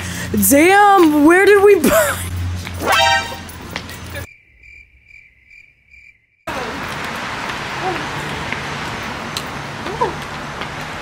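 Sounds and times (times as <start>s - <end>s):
loud rush of outdoor noise: 0.0s - 4.3s, 6.5s - 11.0s
crickets chirping: 3.5s - 6.5s.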